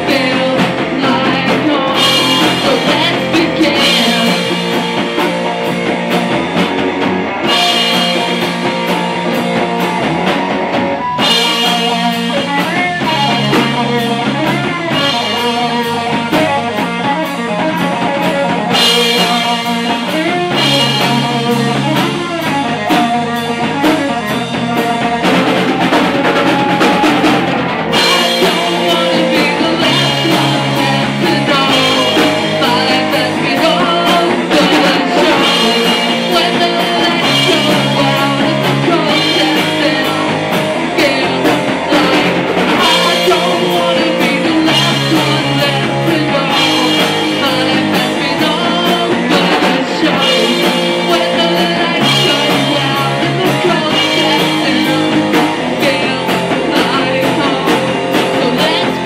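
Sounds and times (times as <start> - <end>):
singer on vocals: 0.0 - 5.2, 11.0 - 59.0
live rock band playing: 0.0 - 59.0.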